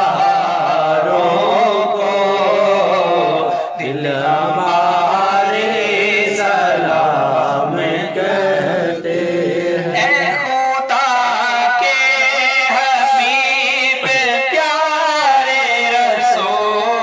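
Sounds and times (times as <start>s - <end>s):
man chanting through amplifier: 0.0s - 17.0s
men singing chant: 0.0s - 17.0s.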